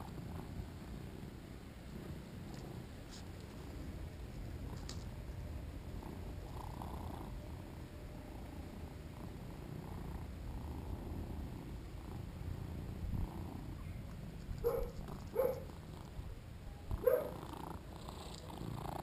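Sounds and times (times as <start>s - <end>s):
cat purring: 0.0s - 19.0s.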